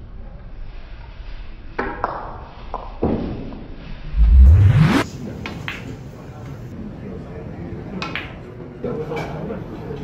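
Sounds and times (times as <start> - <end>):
rising sweep sound: 3.9 - 5.3.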